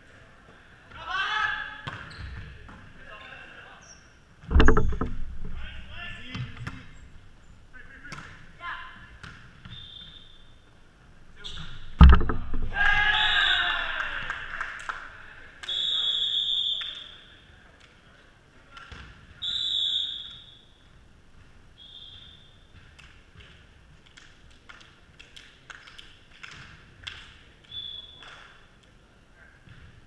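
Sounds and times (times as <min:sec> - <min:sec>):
sneakers squeaking on hardwood: 0:01.9 - 0:02.5, 0:04.6 - 0:10.6, 0:11.4 - 0:13.7
volleyball slamming on floor: 0:04.5 - 0:07.3, 0:11.6 - 0:14.2
players shouting: 0:12.7 - 0:14.6.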